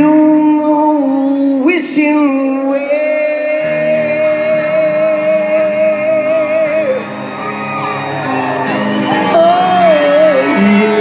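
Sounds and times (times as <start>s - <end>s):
rock band playing: 1.3s - 11.0s
people whooping and shouting: 3.9s - 11.0s.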